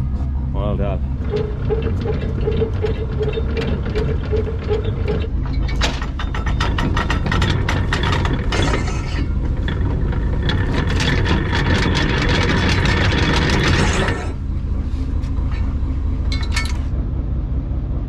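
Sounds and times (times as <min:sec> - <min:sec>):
boat engine running: 0:00.0 - 0:18.0.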